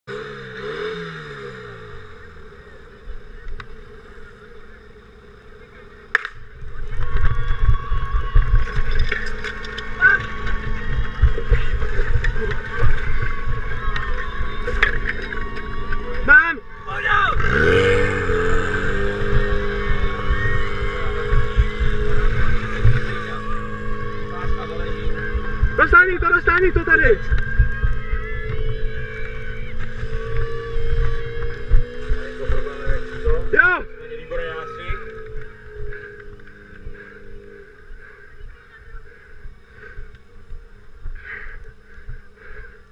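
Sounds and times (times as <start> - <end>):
engine running: 0.0 - 42.9.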